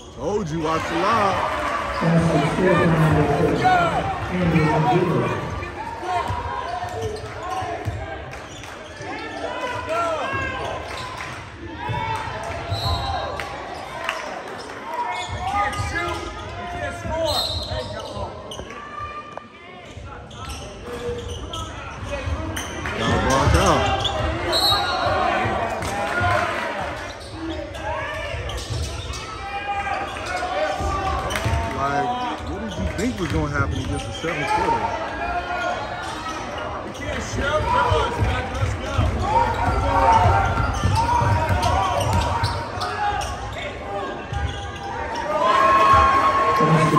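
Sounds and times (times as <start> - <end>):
spectators talking: 0.0 - 11.8, 12.6 - 46.9.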